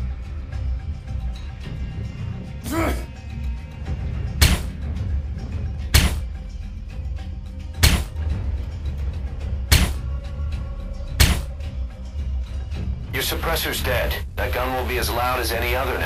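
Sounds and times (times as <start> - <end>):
low background music: 0.0 - 16.0
gunshot sound effects: 4.4 - 4.8, 5.9 - 6.3, 7.8 - 8.2, 9.7 - 10.0, 11.2 - 11.5.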